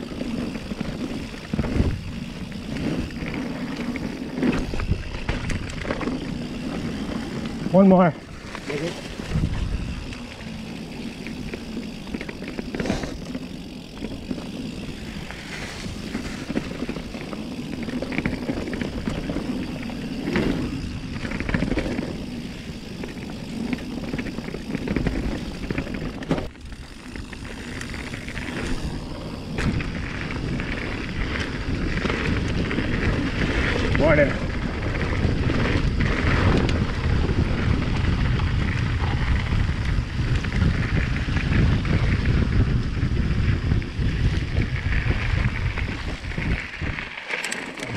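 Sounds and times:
wind buffeting microphone: 0:00.0 - 0:47.2
bike rattling over bumps: 0:00.0 - 0:47.9
bike tyres on dirt and leaves: 0:00.0 - 0:47.9.

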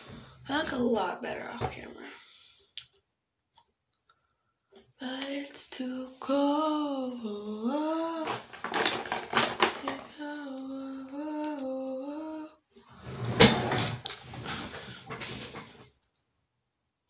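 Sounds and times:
woman humming: 0:09.8 - 0:12.6.

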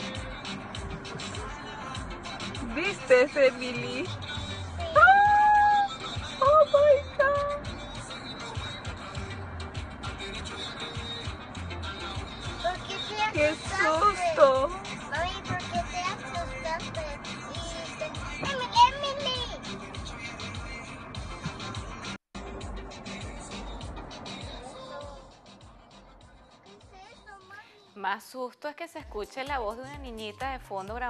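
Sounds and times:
background music: 0:00.0 - 0:31.0.

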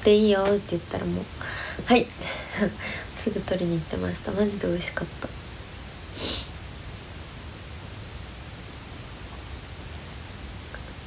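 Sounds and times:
room hum and hiss: 0:00.0 - 0:11.0
quick sniff: 0:06.1 - 0:06.5.

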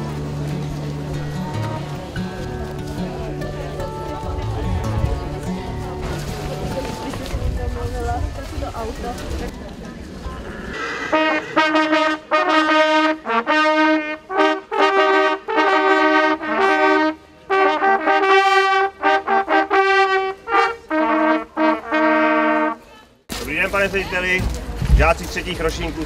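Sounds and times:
trumpets playing fanfare: 0:10.8 - 0:22.9.

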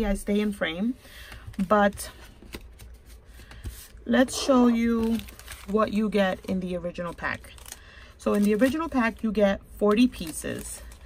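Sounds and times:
paper handling: 0:04.8 - 0:09.2.

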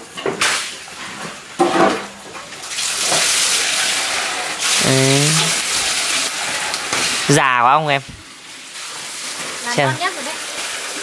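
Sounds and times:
water running: 0:00.8 - 0:11.0.

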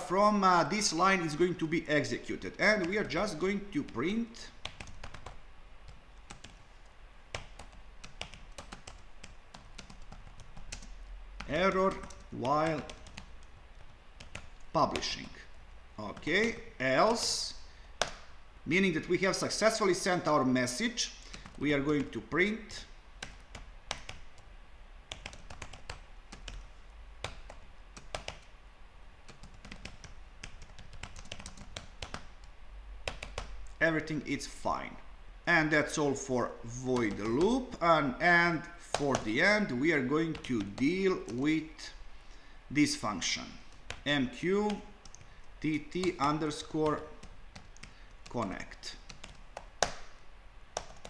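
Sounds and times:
keyboard typing: 0:02.5 - 0:17.4, 0:21.2 - 0:22.2, 0:23.2 - 0:24.5, 0:25.1 - 0:28.5, 0:29.3 - 0:33.8, 0:36.8 - 0:37.8, 0:38.9 - 0:41.4, 0:43.6 - 0:50.2, 0:50.8 - 0:51.0.

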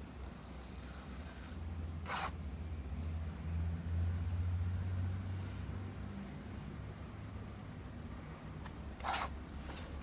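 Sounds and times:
pen scratching paper: 0:02.1 - 0:02.4, 0:09.0 - 0:09.3.

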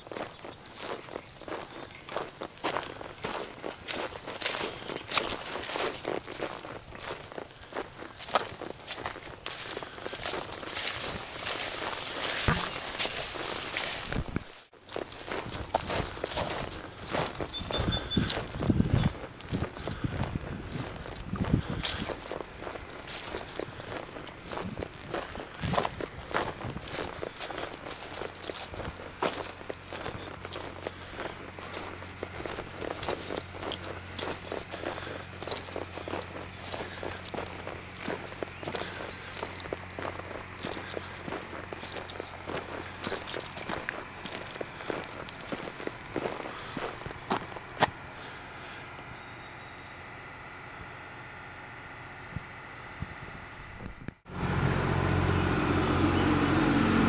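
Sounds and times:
footsteps through long grass: 0:00.0 - 0:49.7
low steady hum: 0:00.0 - 0:57.0.

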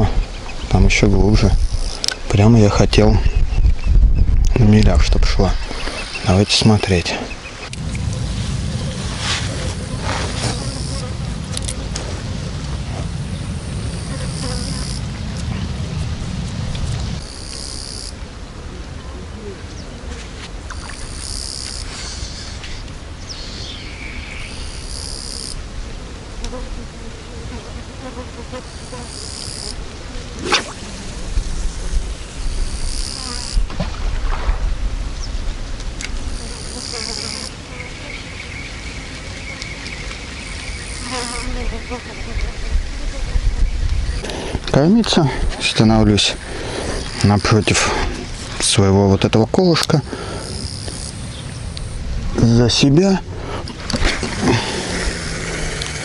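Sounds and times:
wind rumble on microphone: 0:00.0 - 0:06.3, 0:07.3 - 0:17.5, 0:29.7 - 0:49.3, 0:50.4 - 0:56.0
insect buzzing: 0:01.5 - 0:02.1, 0:07.5 - 0:12.1, 0:13.6 - 0:15.1, 0:17.2 - 0:18.2, 0:20.7 - 0:33.7, 0:36.2 - 0:44.5, 0:46.3 - 0:48.5, 0:50.1 - 0:52.0, 0:54.0 - 0:56.0.

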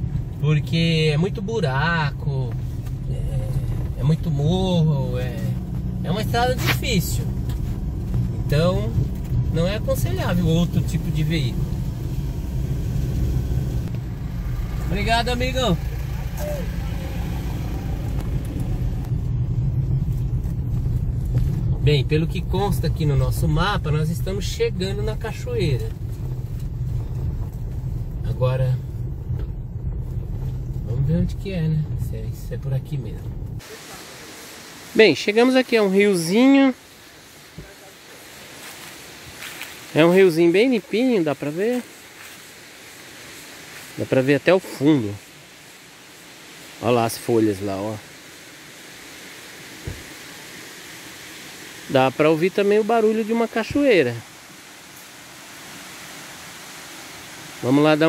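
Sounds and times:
truck driving on rough road: 0:00.0 - 0:33.7
waterfall rushing: 0:33.6 - 0:58.0.

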